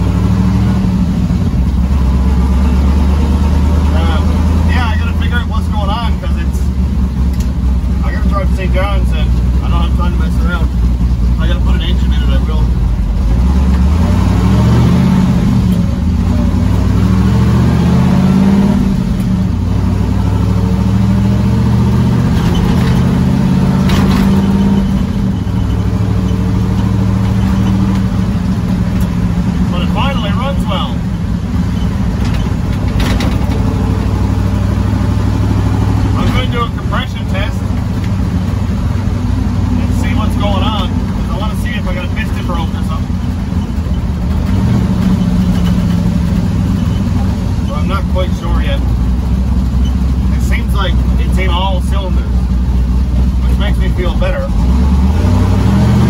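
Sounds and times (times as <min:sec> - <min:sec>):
truck engine accelerating: 0:00.0 - 0:56.0.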